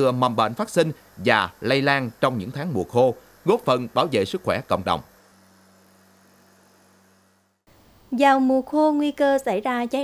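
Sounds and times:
light hiss: 0:00.0 - 0:09.5.

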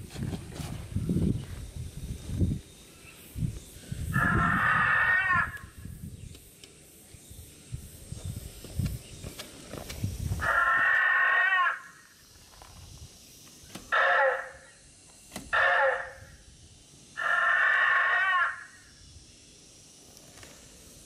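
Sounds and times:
tinny dinosaur calls from speaker: 0:04.2 - 0:05.6, 0:10.4 - 0:12.0, 0:13.9 - 0:14.7, 0:15.5 - 0:16.3, 0:17.2 - 0:18.8.

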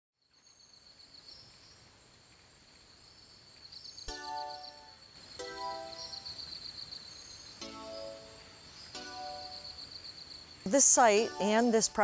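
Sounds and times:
insects trilling: 0:00.2 - 0:12.0.

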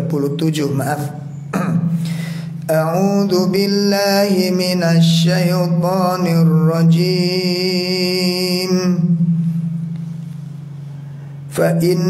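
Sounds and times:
man chanting: 0:00.0 - 0:02.0, 0:02.6 - 0:09.2, 0:11.5 - 0:12.0
low steady hum: 0:00.0 - 0:12.0.

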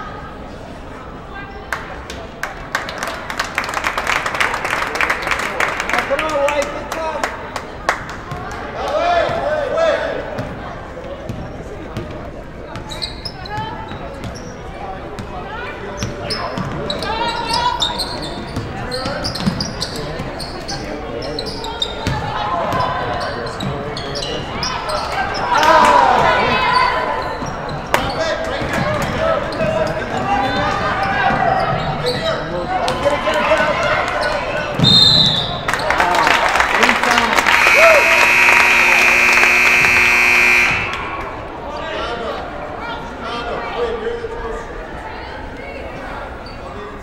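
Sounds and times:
sneaker squeaks: 0:12.7 - 0:14.8, 0:15.9 - 0:25.6, 0:26.7 - 0:28.2, 0:29.5 - 0:32.5
players and spectators calling out: 0:12.8 - 0:46.8
buzzer tone: 0:37.5 - 0:41.2
short high whistle blast: 0:37.5 - 0:41.2.

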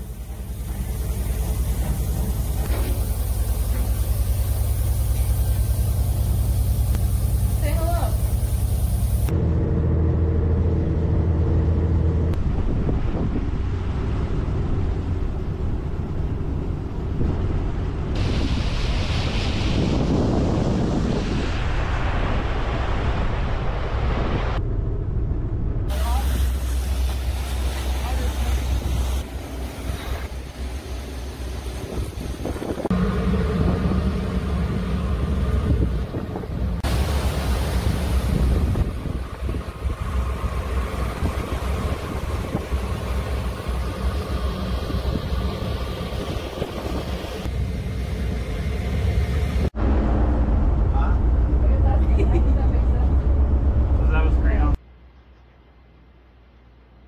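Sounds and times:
boat engine drone: 0:00.0 - 0:18.2, 0:24.6 - 0:54.8
water rushing along hull: 0:00.0 - 0:24.6, 0:25.9 - 0:54.7
wind on microphone: 0:12.4 - 0:24.6, 0:31.7 - 0:37.0, 0:37.8 - 0:47.5.

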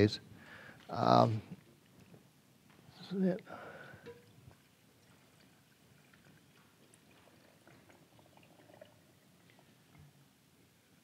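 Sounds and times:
brine pouring into glass jar: 0:04.6 - 0:09.8.

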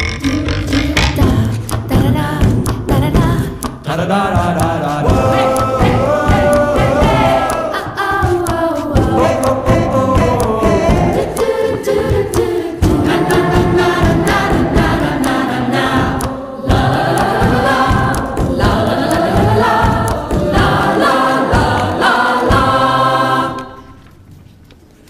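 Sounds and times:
instrumental backing with steady beat: 0:00.0 - 0:24.0
choir singing: 0:00.3 - 0:24.1.

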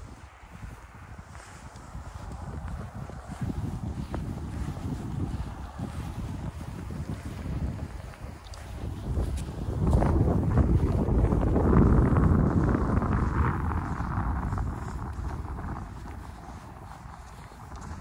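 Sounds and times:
footsteps crunching in snow: 0:00.0 - 0:18.0
wind buffeting microphone: 0:00.0 - 0:18.0.

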